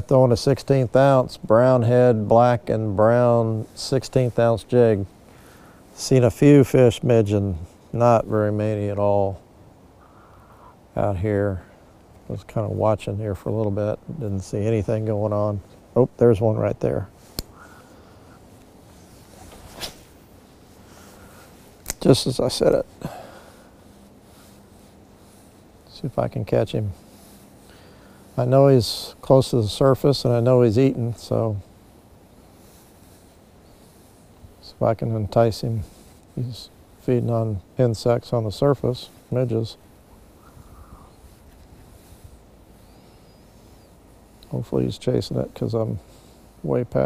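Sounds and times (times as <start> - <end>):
faint outdoor background: 0.0 - 47.0
rod swishing: 19.0 - 20.2.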